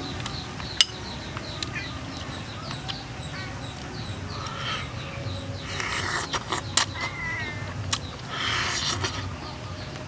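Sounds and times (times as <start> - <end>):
wet chewing and tearing: 7.8 - 9.3.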